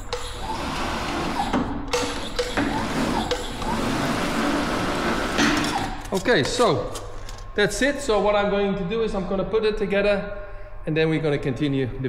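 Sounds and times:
slip roll machine running: 0:00.0 - 0:06.1
metal sheet scraping: 0:00.0 - 0:07.4.

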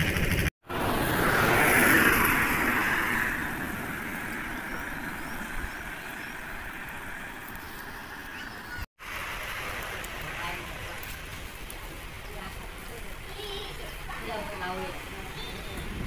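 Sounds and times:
outdoor wet road hiss: 0:00.6 - 0:16.0
tyres hissing on wet road: 0:00.6 - 0:16.0.

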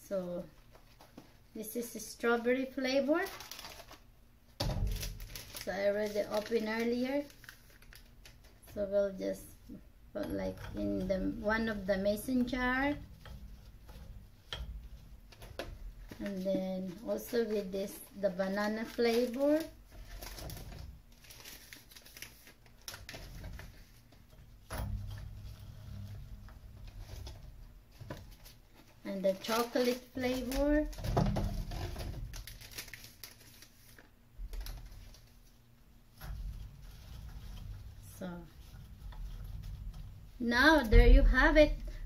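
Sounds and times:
packet rustling and clicking: 0:03.2 - 0:04.1, 0:04.8 - 0:08.7, 0:15.3 - 0:24.2, 0:28.0 - 0:35.3.

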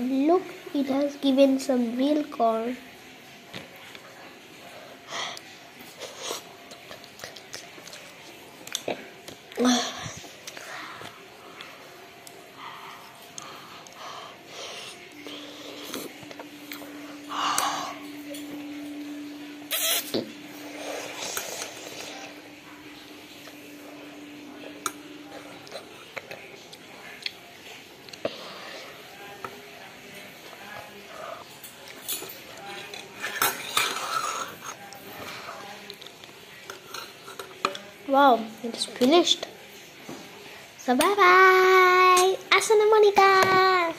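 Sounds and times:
steady low hum: 0:00.0 - 0:38.8
spoon and mouth eating sounds: 0:05.8 - 0:09.6, 0:14.7 - 0:23.6, 0:30.4 - 0:37.9.

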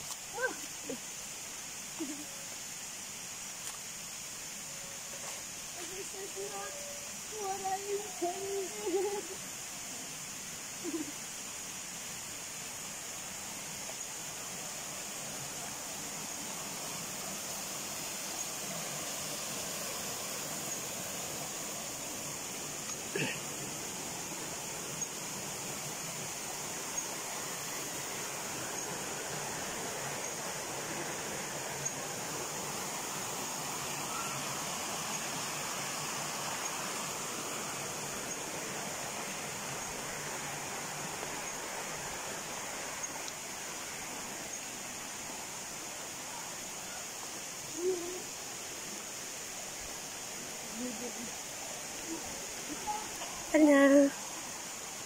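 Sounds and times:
stream water flowing: 0:00.0 - 0:55.0.

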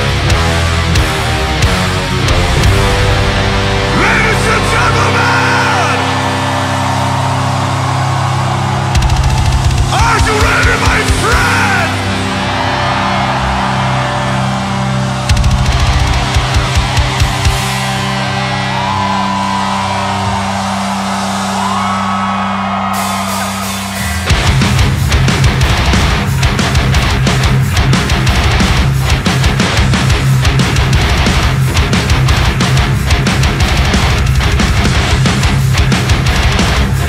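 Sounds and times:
metal band and orchestra chord: 0:00.6 - 0:18.7
crowd shouting and whooping: 0:02.3 - 0:28.7.

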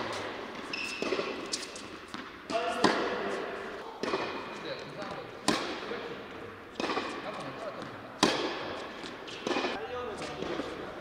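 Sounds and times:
tennis balls bouncing: 0:00.0 - 0:10.9
rackets hitting tennis balls: 0:00.0 - 0:11.0.

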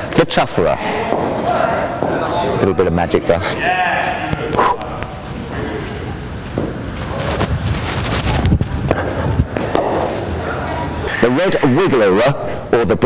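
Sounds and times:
running footsteps on artificial turf: 0:04.5 - 0:11.7.

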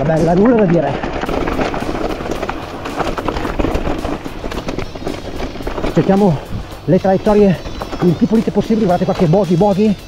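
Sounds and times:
bike rattling over rocks: 0:00.0 - 0:10.0
tyres crunching over gravel: 0:00.0 - 0:10.0.

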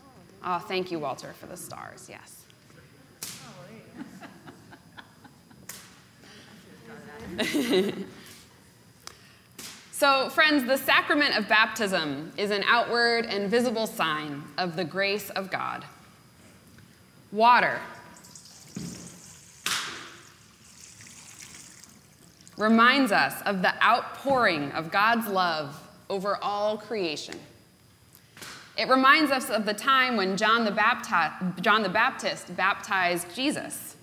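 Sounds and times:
water trickling: 0:18.0 - 0:22.6
water splashing into bowl: 0:18.1 - 0:22.6.

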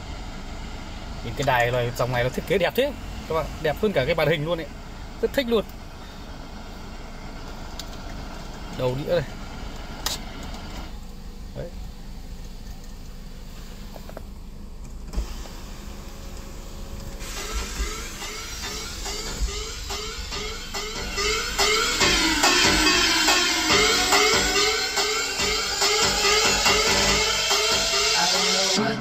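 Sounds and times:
music from car speakers: 0:05.2 - 0:29.0.

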